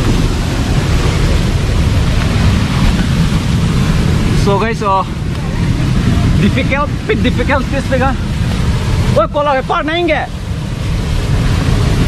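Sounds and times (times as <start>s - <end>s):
fast-flowing stream rushing: 0.0s - 12.0s
wind noise on microphone: 0.0s - 12.0s.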